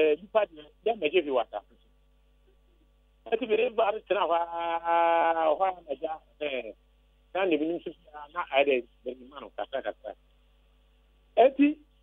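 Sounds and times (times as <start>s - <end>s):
person speaking: 0.0s - 10.4s, 11.3s - 12.0s.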